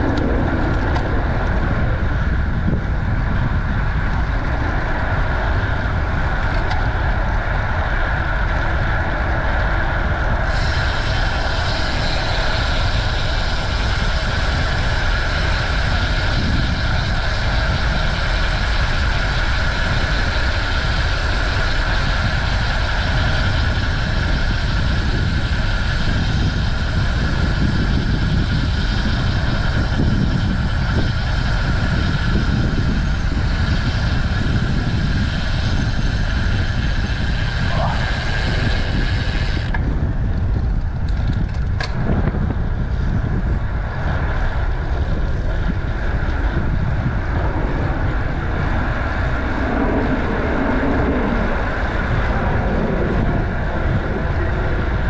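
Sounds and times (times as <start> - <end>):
bicycle tyre noise: 0.0 - 55.0
wind on microphone: 0.0 - 55.0.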